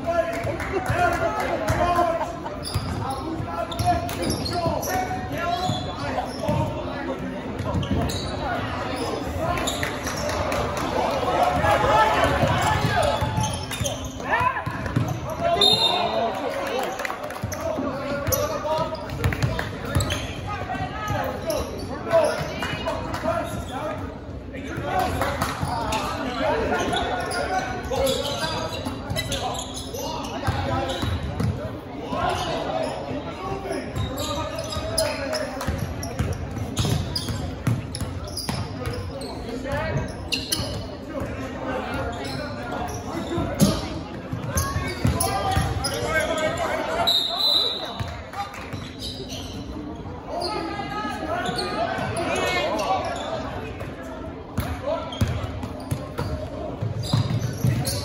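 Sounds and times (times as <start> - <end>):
voices echoing in gym: 0.0 - 58.0.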